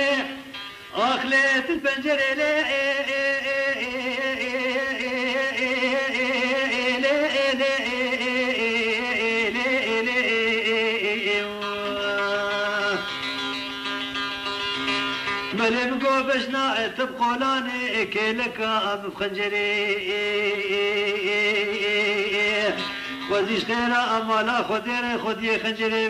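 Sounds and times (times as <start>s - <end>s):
person singing: 0.0s - 13.8s, 15.4s - 26.0s
folk melody with heavy vibrato: 0.0s - 25.8s.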